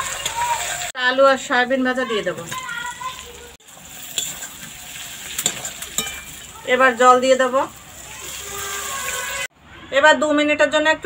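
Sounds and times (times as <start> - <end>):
food sizzling in a pan: 0.0 - 9.5.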